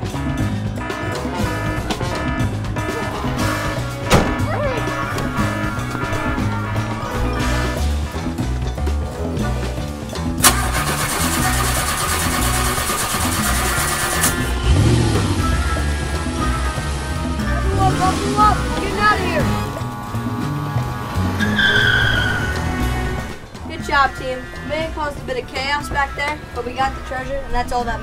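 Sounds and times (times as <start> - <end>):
vehicle engine starting and revving: 0.0 - 8.6, 10.2 - 28.0
background music with a beat: 0.0 - 10.4, 12.8 - 24.0
tyre squeal: 21.4 - 23.1.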